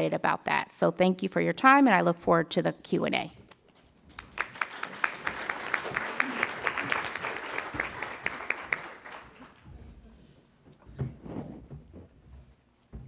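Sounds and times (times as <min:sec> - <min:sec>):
audience applauding: 0:04.1 - 0:09.7.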